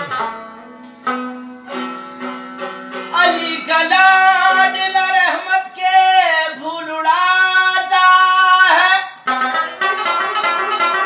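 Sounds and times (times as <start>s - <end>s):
man singing long high note: 3.1s - 9.2s.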